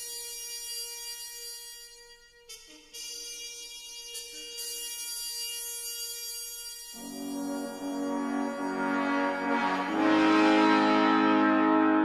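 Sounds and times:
orchestral soundtrack music: 7.0 - 12.0.

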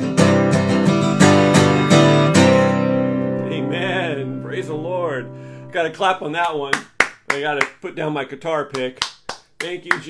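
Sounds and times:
acoustic guitar chord ringing: 0.0 - 6.3
man speaking: 3.4 - 10.0
hand clap: 6.4 - 7.8, 8.7 - 10.0.

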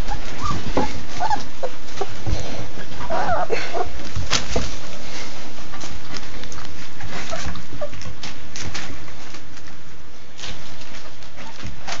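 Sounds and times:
puppies squeaking and grunting: 0.0 - 4.8, 5.8 - 8.9, 10.8 - 12.0.

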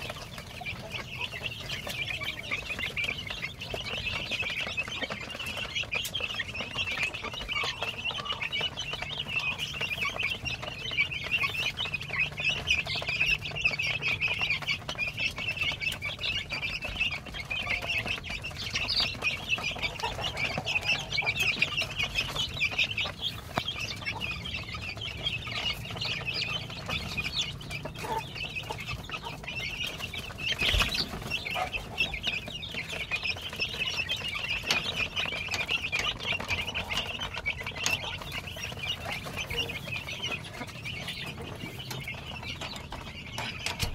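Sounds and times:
chicks peeping: 0.0 - 43.9.

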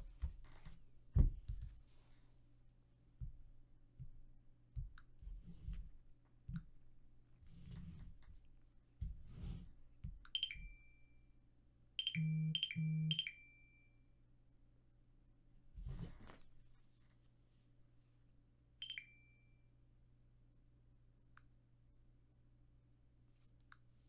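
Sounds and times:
electronic dings: 12.0 - 14.0, 18.8 - 19.6.

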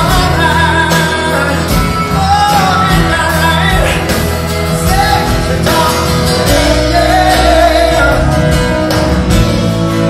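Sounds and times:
acoustic guitar: 0.0 - 10.0
bass: 0.0 - 10.0
drums: 0.0 - 10.0
man singing: 0.0 - 10.0.

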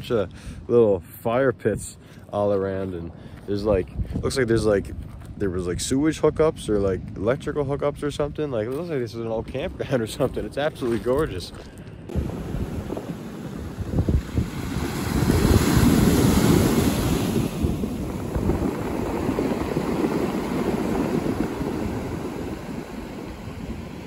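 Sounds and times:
wind buffeting microphone: 3.5 - 24.0.

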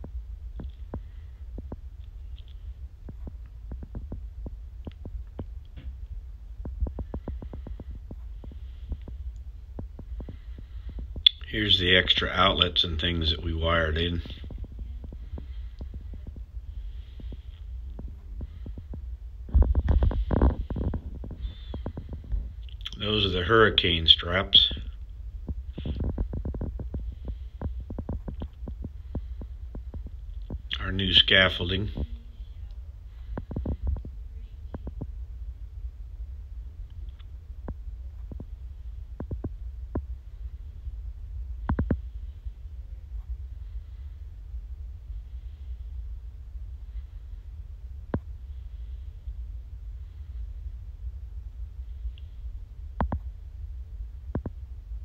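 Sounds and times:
faint irregular clicks: 0.0 - 13.4, 14.0 - 23.0, 23.8 - 35.2, 36.8 - 50.7, 51.7 - 55.0
wind buffeting microphone: 0.0 - 44.2.

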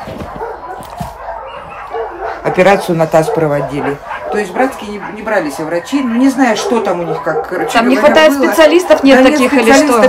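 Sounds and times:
dog barking and yipping: 0.0 - 10.0.

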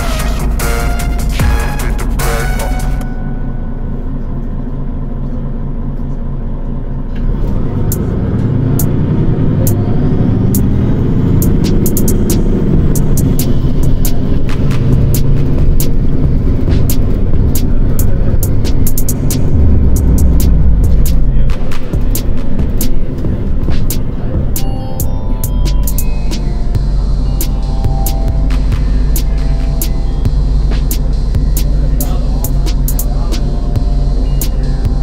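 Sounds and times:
car engine and road rumble: 0.0 - 35.0.

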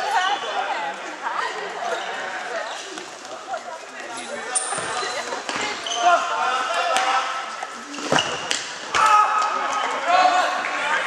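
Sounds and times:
voices in sports hall: 0.0 - 11.0
shoes squeaking on court: 1.8 - 6.3, 7.6 - 8.7.

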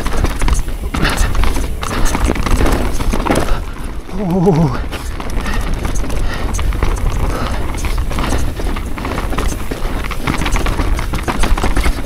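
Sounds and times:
tyres rumbling on rough ground: 0.0 - 12.0.

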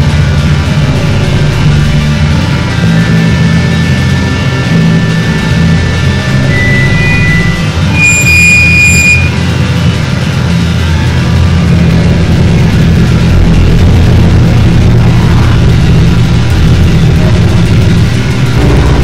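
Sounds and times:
low drone noise music: 0.0 - 19.0
electronic beep: 5.2 - 9.4
thin high tones: 6.0 - 9.4.

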